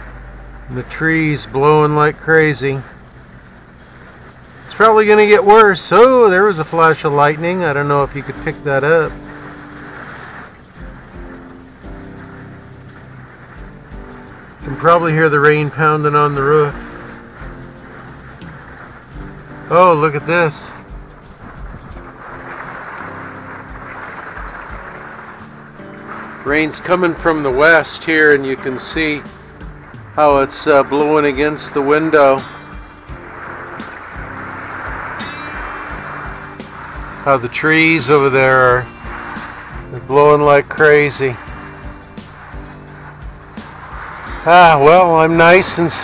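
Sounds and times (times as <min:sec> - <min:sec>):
wind: 0:00.0 - 0:46.0
heavy rain on a roof: 0:02.6 - 0:05.6, 0:08.0 - 0:38.0, 0:38.8 - 0:46.0
music with held notes: 0:08.3 - 0:46.0.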